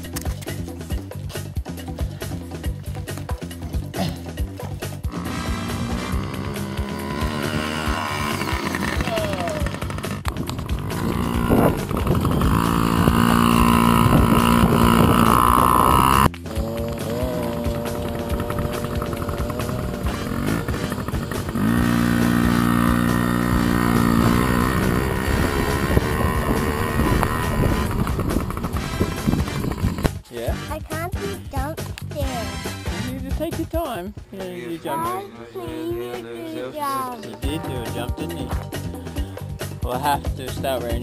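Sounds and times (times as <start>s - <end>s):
background music: 0.0s - 41.0s
motorbike engines revving: 4.1s - 30.3s.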